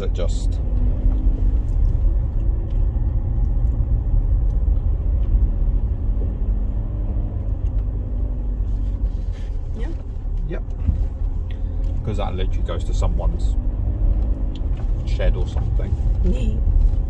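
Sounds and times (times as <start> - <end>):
faint engine hum: 0.0 - 17.0
low rumble of engine and tyres: 0.0 - 17.0.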